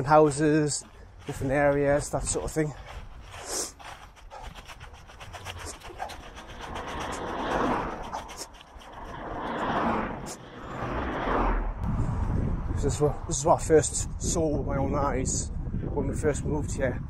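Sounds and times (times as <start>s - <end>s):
passing vehicles road noise: 6.3s - 14.2s.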